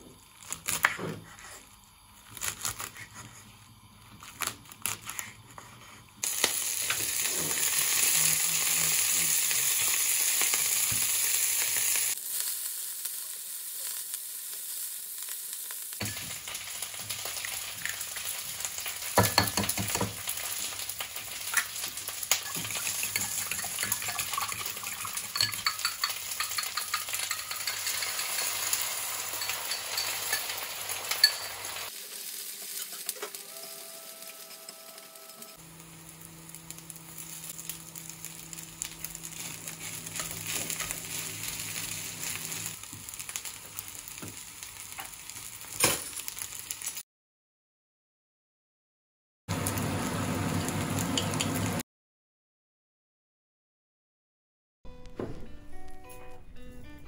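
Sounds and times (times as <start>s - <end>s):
food sizzling in oil: 6.2s - 47.0s, 49.5s - 51.8s.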